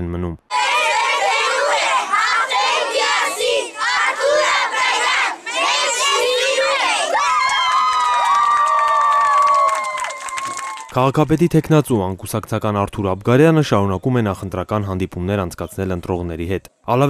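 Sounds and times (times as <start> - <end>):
children shouting and cheering: 0.5 - 11.0.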